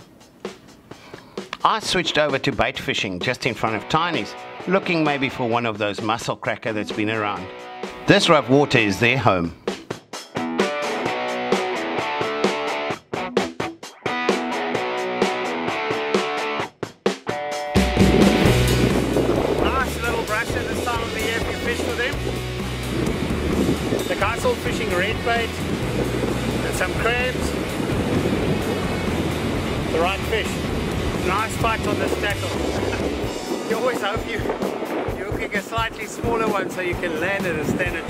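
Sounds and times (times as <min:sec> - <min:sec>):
guitar background music: 0:03.4 - 0:38.0
surf breaking on rocks: 0:18.0 - 0:38.0
wind buffeting microphone: 0:18.0 - 0:38.0.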